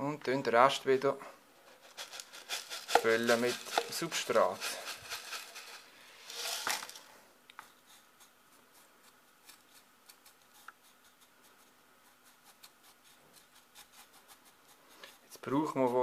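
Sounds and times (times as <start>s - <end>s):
granules poured into a pot: 1.7s - 7.1s
faint clicks of granules pressed: 2.0s - 7.8s.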